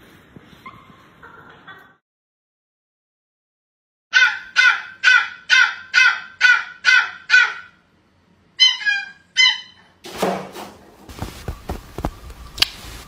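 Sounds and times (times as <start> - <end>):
puppy yipping: 4.2 - 7.8, 8.6 - 9.9.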